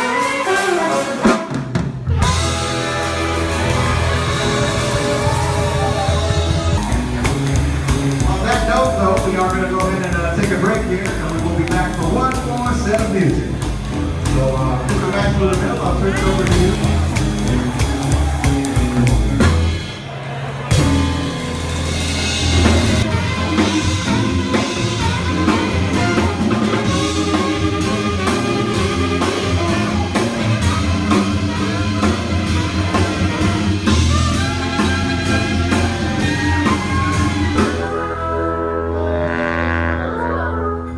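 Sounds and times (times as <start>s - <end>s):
swing band music: 0.0s - 40.9s.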